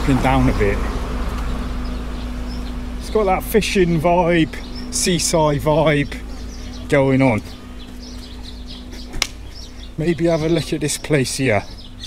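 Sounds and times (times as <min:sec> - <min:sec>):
constant hum: 0:00.0 - 0:12.0.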